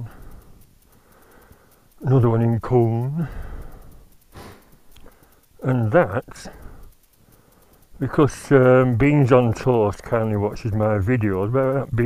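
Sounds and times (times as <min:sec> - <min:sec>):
breathing: 0:00.0 - 0:02.0, 0:03.2 - 0:05.6, 0:06.5 - 0:08.0.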